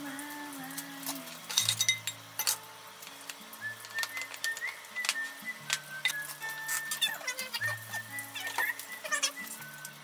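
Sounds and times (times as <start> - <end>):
soft background music: 0.0 - 10.0
ceramic bowls clinking: 1.4 - 2.6.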